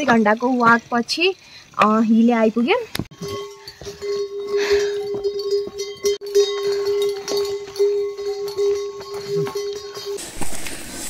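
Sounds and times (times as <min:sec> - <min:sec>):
mule bells ringing: 0:03.1 - 0:10.7.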